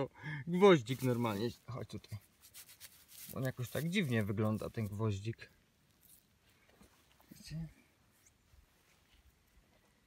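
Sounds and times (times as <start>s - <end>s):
faint rustling: 0.7s - 10.0s.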